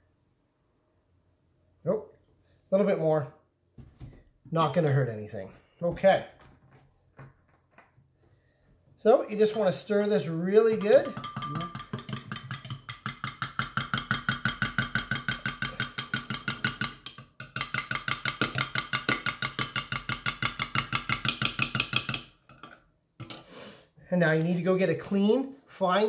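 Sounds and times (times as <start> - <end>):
metal spoon stirring in glass jug: 9.4 - 22.8.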